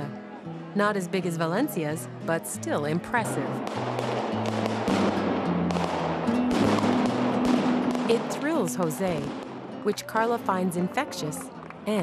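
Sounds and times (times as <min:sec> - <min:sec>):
background music: 0:00.0 - 0:12.0
firecrackers crackling rapidly: 0:03.6 - 0:09.6.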